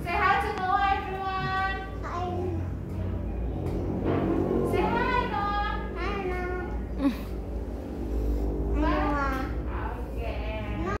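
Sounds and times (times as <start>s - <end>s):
low room hum: 0.0s - 11.0s
young children's voices: 1.8s - 3.2s.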